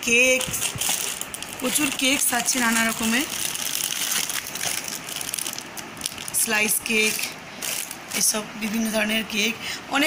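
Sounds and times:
plastic snack packets crinkling: 0.4 - 8.9.

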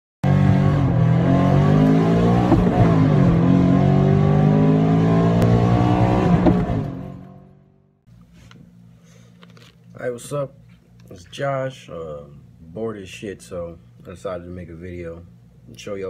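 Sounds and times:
car engine revving: 0.2 - 7.8.

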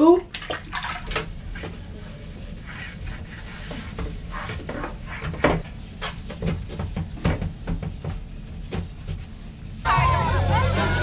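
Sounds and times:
toilet scrubbing strokes: 0.2 - 11.0
music: 9.8 - 11.0.

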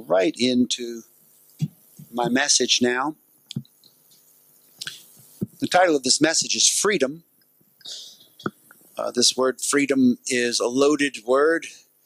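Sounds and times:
short breathy hiss: 3.9 - 5.5, 7.8 - 9.0.

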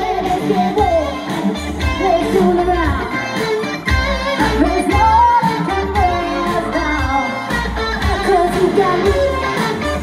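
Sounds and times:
electric guitar: 0.0 - 10.0
rock band playing: 0.0 - 10.0
woman singing: 0.0 - 10.0.

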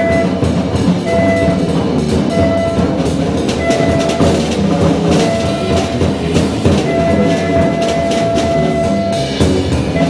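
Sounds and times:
tenor saxophone held notes: 0.0 - 3.0, 3.6 - 6.2, 6.8 - 9.3
cymbals splashing: 0.0 - 10.0
drum kit drumming: 0.0 - 10.0.

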